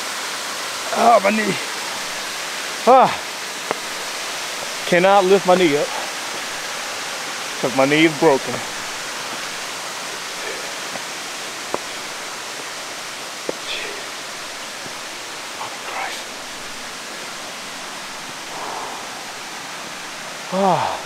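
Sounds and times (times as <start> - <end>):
rushing hiss: 0.0 - 21.0
person groaning or breathing: 13.6 - 14.2, 18.5 - 19.4, 20.5 - 21.0.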